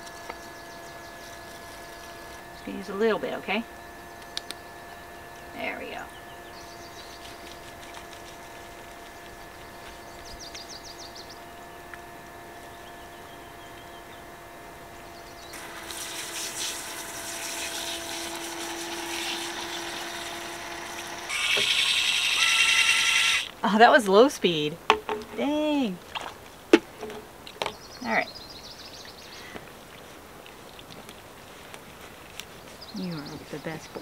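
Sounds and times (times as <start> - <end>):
shower pump humming: 0.0 - 13.0, 13.8 - 23.6
water spray hiss: 15.6 - 22.3.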